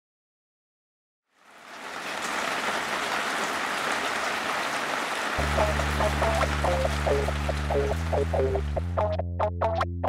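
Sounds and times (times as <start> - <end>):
steady rain falling: 1.3 - 8.9.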